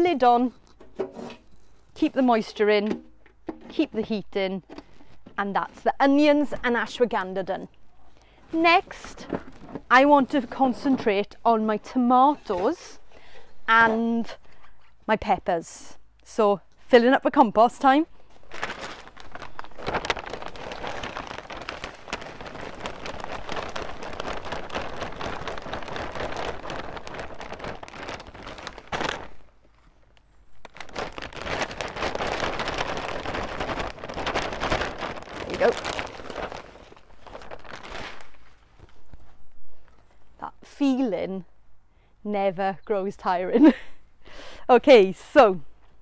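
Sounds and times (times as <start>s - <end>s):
plastic sack crinkling: 18.2s - 39.5s.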